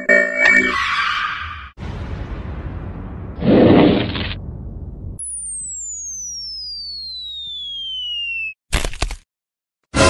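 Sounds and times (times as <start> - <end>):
falling whistle tone: 5.2 - 8.6.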